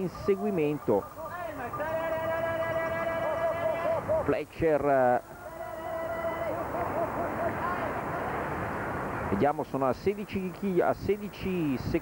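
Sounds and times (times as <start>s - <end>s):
outdoor ambient noise: 0.0s - 12.0s
spectators calling out: 0.1s - 4.3s, 5.2s - 8.9s.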